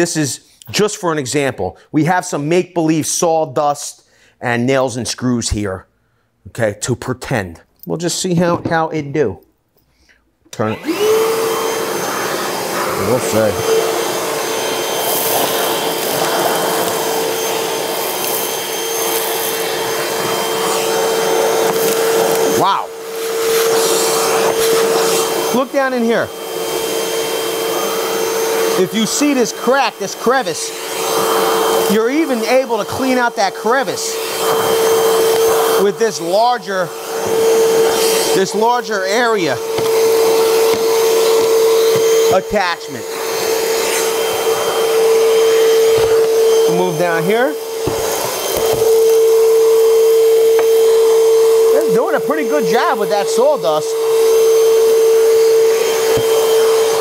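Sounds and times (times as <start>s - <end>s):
nozzle sucking sawdust: 10.6s - 57.0s
wet dry vacuum motor whine: 10.6s - 57.0s.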